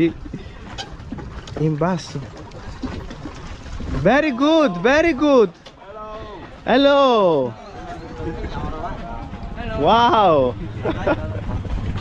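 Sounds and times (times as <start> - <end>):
choppy water moving: 0.0 - 12.0
wind buffeting microphone: 0.0 - 12.0.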